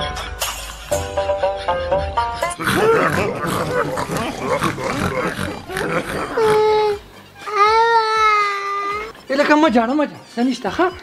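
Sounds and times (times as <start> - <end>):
jumbled voices: 2.5 - 7.7
young boy crying loudly: 5.8 - 9.2.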